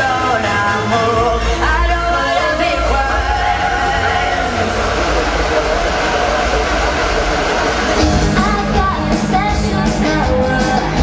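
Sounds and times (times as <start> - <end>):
noisy rumbling dance backing track: 0.0 - 11.0
steady bass: 0.0 - 11.0
sung music: 0.0 - 11.0.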